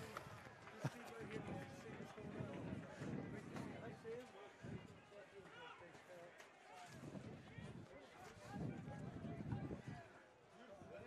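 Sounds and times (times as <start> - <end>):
low crowd murmur: 0.0 - 11.0.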